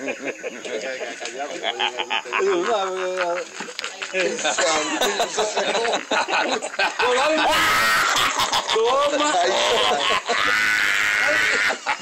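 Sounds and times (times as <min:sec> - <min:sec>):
man shrieking laugh: 0:07.2 - 0:12.0.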